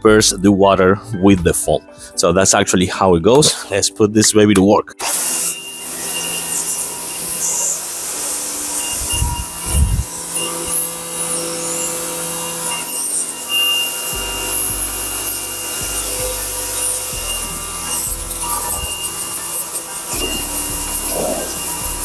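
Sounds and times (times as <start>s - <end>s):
pressure washer motor whine: 5.0s - 22.0s.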